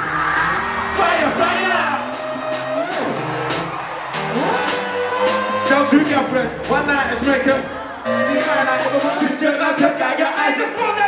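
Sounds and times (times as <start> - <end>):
drum beat: 0.0 - 11.0
loud live hip-hop music: 0.0 - 11.0
voice over beat: 4.5 - 11.0.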